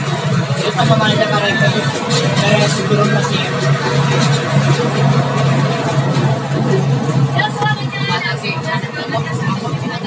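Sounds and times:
bus engine drone: 0:00.0 - 0:10.0
road and wind noise: 0:00.0 - 0:10.0.

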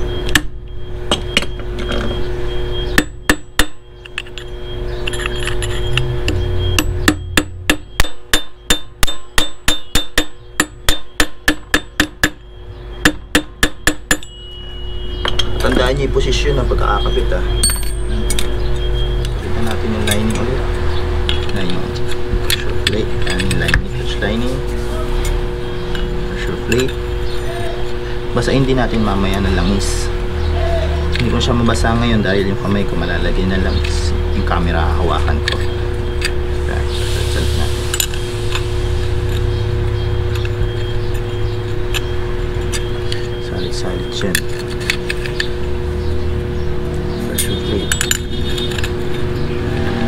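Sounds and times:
hammer striking metal punch: 0:02.9 - 0:03.8, 0:05.1 - 0:14.5
metal parts clinking: 0:04.0 - 0:07.2, 0:17.6 - 0:18.9, 0:21.3 - 0:27.5, 0:40.3 - 0:45.7, 0:47.3 - 0:49.4.

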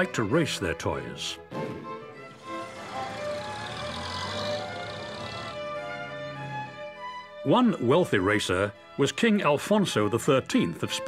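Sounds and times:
background music: 0:00.0 - 0:11.0
racing car engine running: 0:02.4 - 0:07.0.

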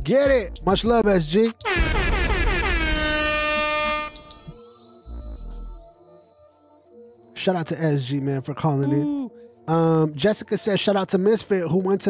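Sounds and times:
horn tone sliding down: 0:01.6 - 0:04.5.

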